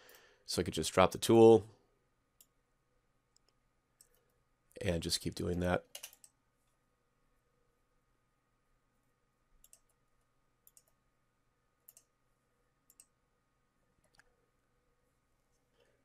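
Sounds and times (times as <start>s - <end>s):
computer mouse clicking: 5.9s - 6.4s, 9.6s - 10.0s, 10.6s - 11.0s, 11.9s - 12.1s, 12.9s - 13.1s.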